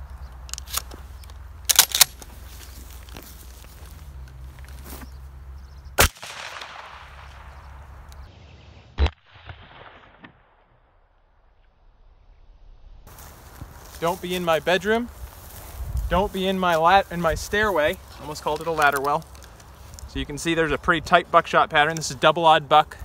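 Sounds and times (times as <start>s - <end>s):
sharp clicks: 0.2s - 2.3s
shotgun firing: 6.0s - 7.6s, 9.0s - 10.7s.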